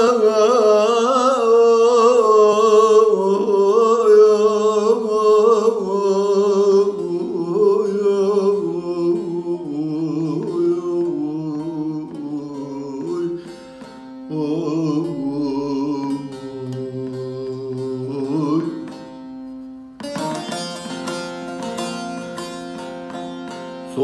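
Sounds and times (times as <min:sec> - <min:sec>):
man singing: 0:00.0 - 0:19.2
long-necked lute drone strings: 0:00.0 - 0:24.0
fast plectrum strokes on lute: 0:20.0 - 0:24.0.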